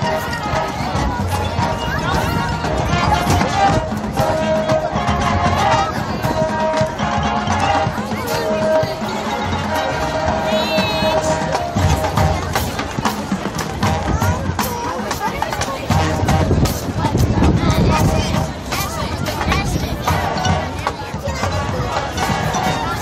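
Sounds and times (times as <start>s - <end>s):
brass chords: 0.0s - 23.0s
marching drums: 0.0s - 23.0s
percussion: 0.0s - 23.0s.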